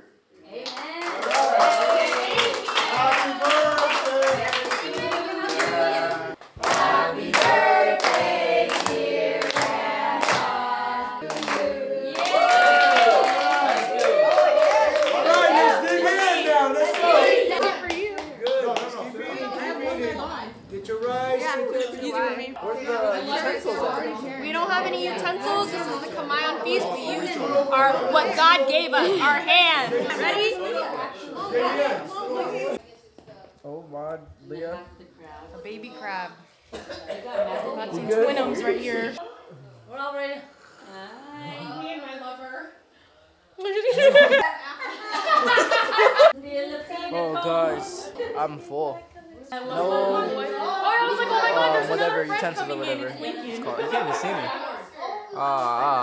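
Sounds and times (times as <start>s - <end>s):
people chatting at table: 0.0s - 56.0s
people clapping in time: 0.6s - 5.8s, 12.2s - 19.0s
group of people singing: 1.8s - 12.7s.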